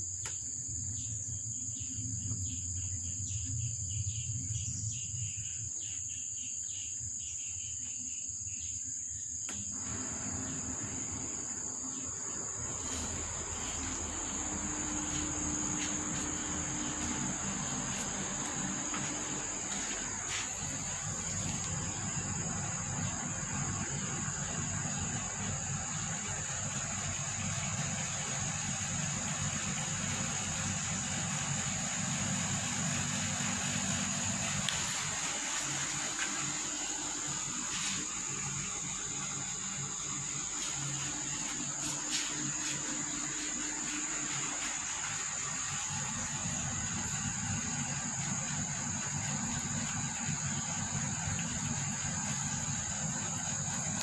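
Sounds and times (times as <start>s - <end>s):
insects chirring: 0.0s - 54.0s
low steady rumble: 9.7s - 54.0s.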